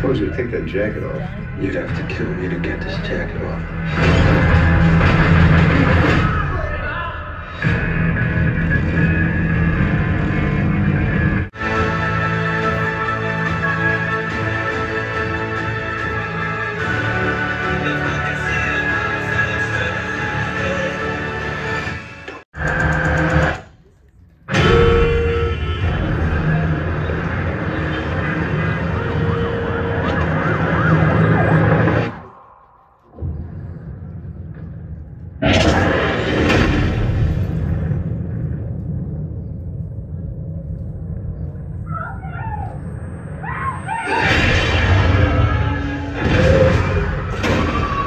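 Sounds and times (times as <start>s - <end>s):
movie trailer music: 0.0s - 41.9s, 42.7s - 48.0s.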